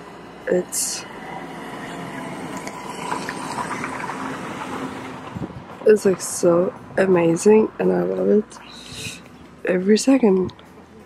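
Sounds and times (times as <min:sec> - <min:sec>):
distant motor hum: 0:00.0 - 0:10.8.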